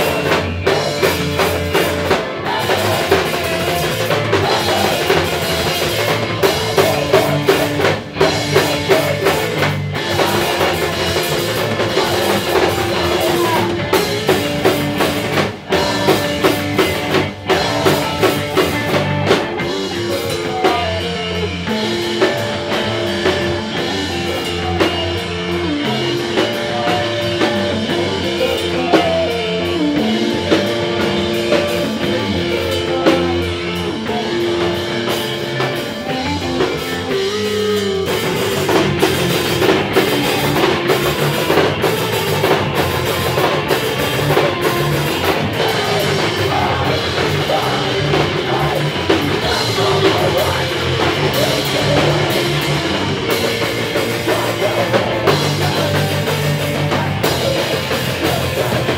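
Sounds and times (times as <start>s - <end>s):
drum kit with cymbals: 0.0s - 58.9s
electric bass: 0.0s - 58.9s
electric guitar: 0.0s - 58.9s.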